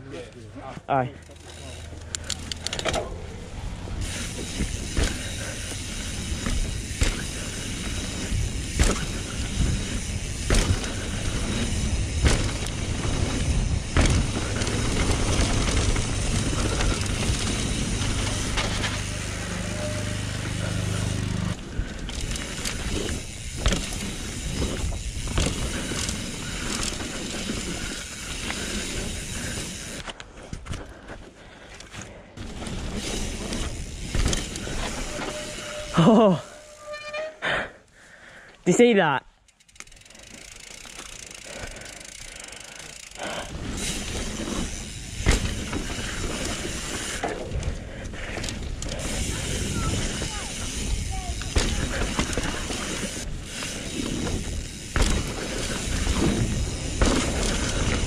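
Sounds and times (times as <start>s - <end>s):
bike tyre noise on dirt: 0.0s - 38.6s, 39.5s - 58.0s
bike knocks and rattles: 4.0s - 30.9s, 32.4s - 35.9s, 43.0s - 58.0s.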